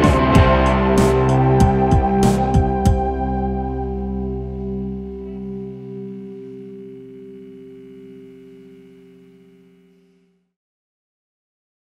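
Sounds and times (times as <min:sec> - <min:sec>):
band's final chord ringing: 0:00.0 - 0:10.0.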